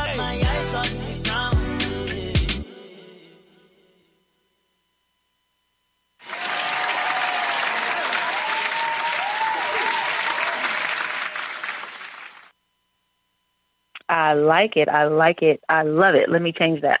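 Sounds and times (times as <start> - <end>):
cheers: 6.2 - 12.5
crowd applause: 6.2 - 12.5.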